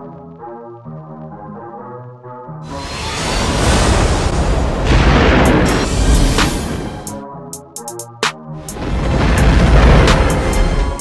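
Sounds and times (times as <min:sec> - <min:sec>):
loud rushing roar: 0:02.7 - 0:07.1.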